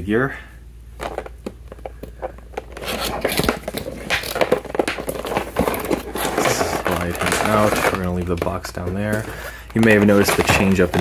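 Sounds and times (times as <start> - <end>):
packaging clicks: 1.0 - 11.0
cardboard scraping and rustling: 2.2 - 11.0.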